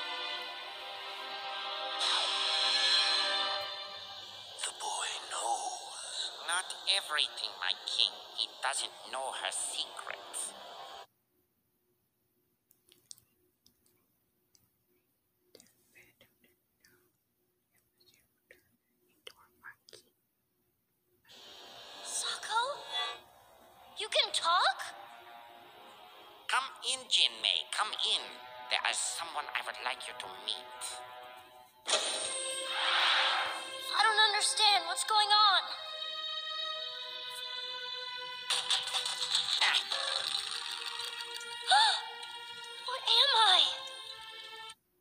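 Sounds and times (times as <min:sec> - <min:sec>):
background music: 0:00.0 - 0:11.1, 0:21.3 - 0:44.8
soft mouth noises: 0:12.7 - 0:20.2.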